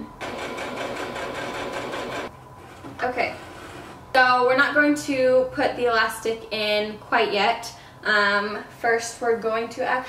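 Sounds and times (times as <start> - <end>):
electric sewing machine running: 0.2 - 2.3.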